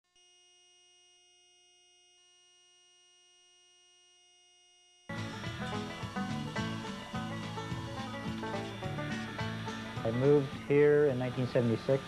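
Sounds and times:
faint electronic hum: 0.2s - 12.0s.

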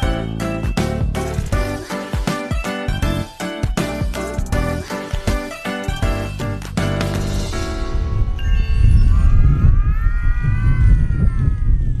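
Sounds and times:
dance music: 0.0s - 7.7s
wind on microphone rumble: 7.5s - 12.0s.

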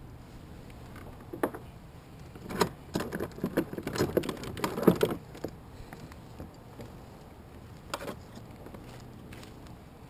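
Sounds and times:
fishing gear clicking and rattling: 0.8s - 7.0s.

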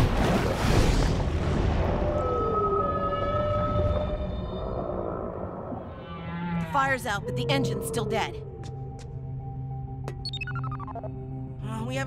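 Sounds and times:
whale song calls: 1.9s - 7.9s
background music: 6.5s - 12.0s.

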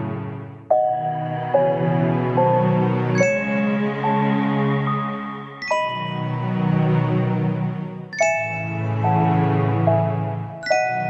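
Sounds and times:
bell-like chime notes: 0.7s - 6.8s, 8.1s - 11.0s.

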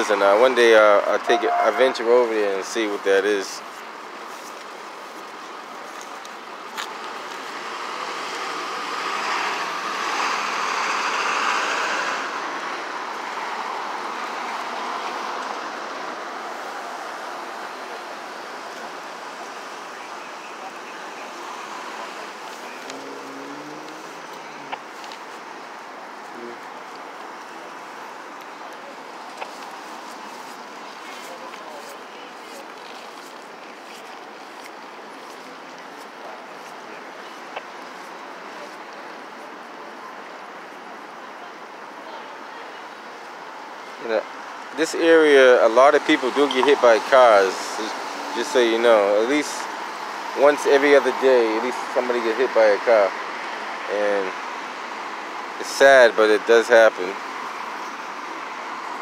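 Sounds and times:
hum of road traffic: 0.0s - 59.0s
vehicle passing close by: 7.5s - 17.5s, 21.2s - 24.8s.

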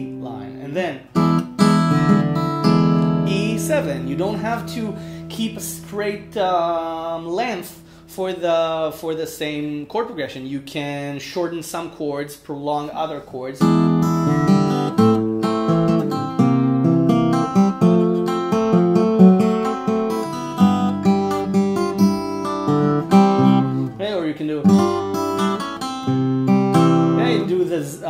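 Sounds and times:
fingerstyle acoustic guitar: 1.1s - 6.4s, 13.6s - 24.0s, 24.6s - 27.7s.

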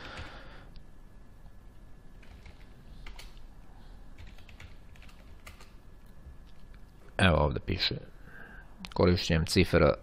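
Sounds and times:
computer keyboard keystrokes: 0.1s - 0.3s, 2.2s - 3.4s, 4.2s - 5.8s.

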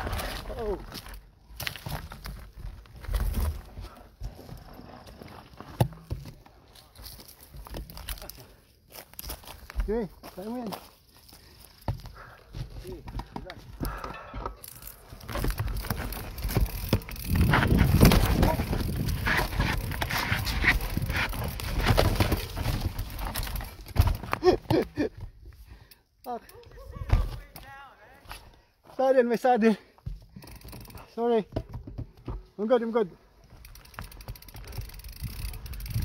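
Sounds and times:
bike tyres rumbling on dirt: 0.0s - 25.4s, 30.0s - 36.0s
bike clattering over rocks: 11.8s - 25.1s, 33.5s - 36.0s.

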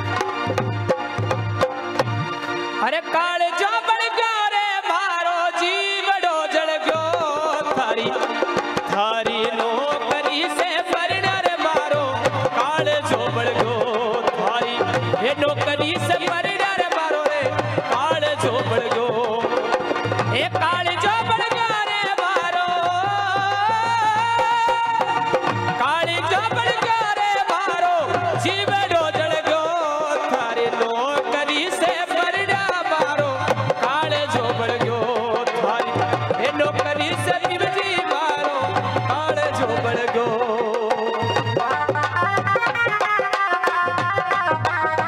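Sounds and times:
dholak drum rhythm: 0.0s - 45.0s
harmonium: 0.0s - 45.0s.

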